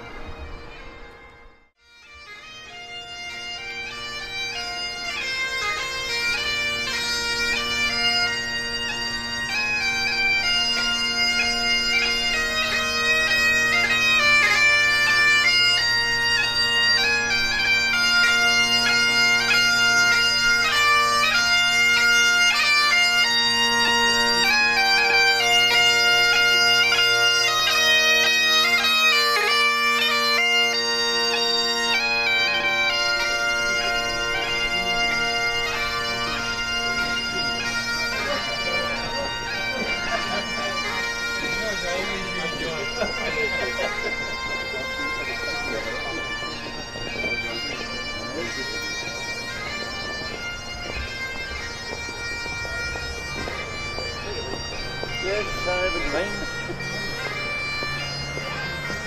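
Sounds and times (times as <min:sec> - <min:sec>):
bagpipes playing: 0:00.0 - 0:59.0.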